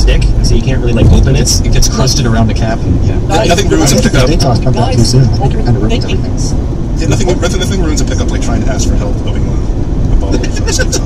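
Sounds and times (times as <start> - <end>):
car driving at highway speed: 0.0 - 11.0
people talking: 0.0 - 11.0.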